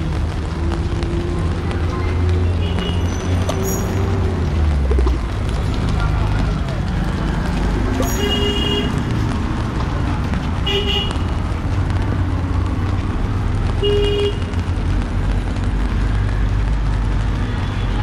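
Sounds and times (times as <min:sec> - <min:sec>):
street traffic rumbling: 0:00.0 - 0:18.0
vehicle horn toots: 0:08.0 - 0:09.0.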